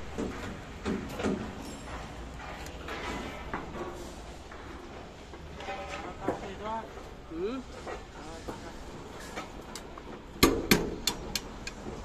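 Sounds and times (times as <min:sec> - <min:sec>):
workers talking: 0:02.4 - 0:10.2.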